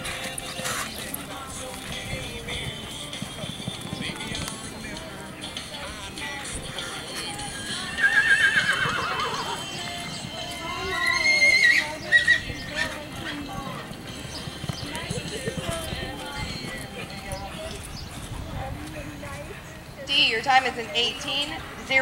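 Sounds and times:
horse hoofbeats galloping on dirt: 0.0s - 22.0s
horse whinnying: 7.8s - 9.8s, 10.7s - 13.0s.

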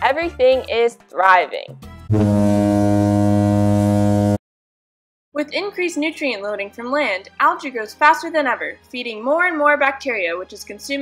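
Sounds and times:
low wrong answer buzzer: 2.1s - 4.4s.

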